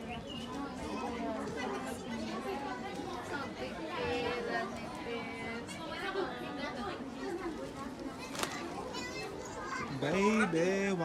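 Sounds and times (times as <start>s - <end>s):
people talking indistinctly: 0.0s - 11.0s
children's voices: 7.3s - 10.0s.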